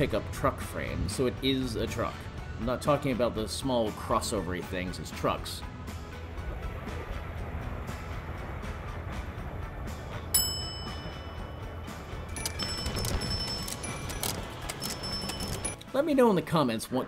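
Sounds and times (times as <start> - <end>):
background music: 0.0 - 17.0
vehicle driving rumble: 6.0 - 10.6
ringing tones: 10.3 - 15.8.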